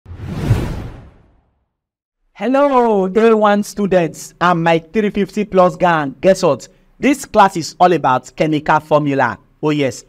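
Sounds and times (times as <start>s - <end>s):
whoosh: 0.1s - 1.7s.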